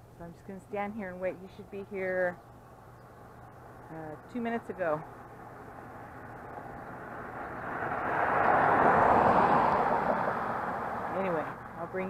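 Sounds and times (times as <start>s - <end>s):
vehicle passing by: 3.3s - 12.0s.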